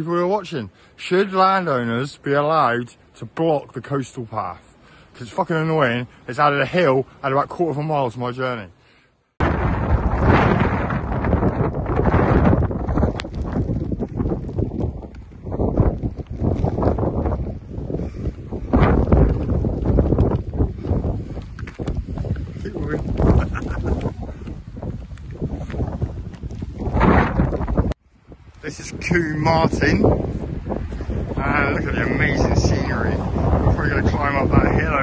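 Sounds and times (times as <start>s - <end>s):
wind buffeting microphone: 9.4s - 35.0s.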